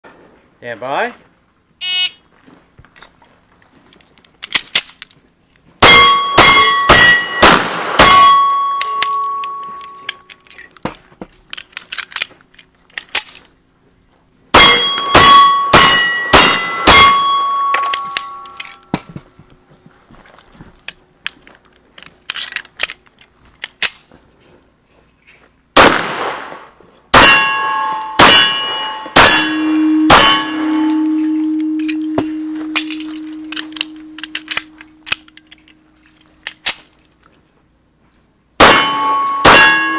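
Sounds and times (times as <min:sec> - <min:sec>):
pistol shots: 0:05.8 - 0:09.6, 0:14.6 - 0:18.4, 0:25.8 - 0:35.2, 0:38.6 - 0:39.9
steel targets ringing: 0:05.8 - 0:10.3, 0:14.5 - 0:19.1, 0:27.1 - 0:35.9, 0:38.6 - 0:39.9
steady low tone: 0:27.3 - 0:36.5.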